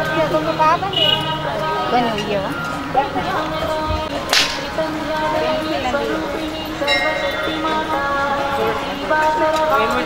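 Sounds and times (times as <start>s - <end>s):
crowd voices: 0.0s - 10.0s
sharp swishing crack: 4.3s - 4.7s.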